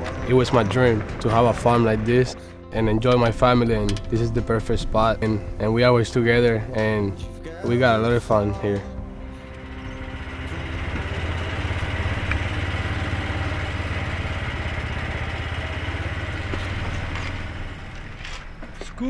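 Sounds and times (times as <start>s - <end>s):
golf cart engine hum: 0.0s - 19.0s.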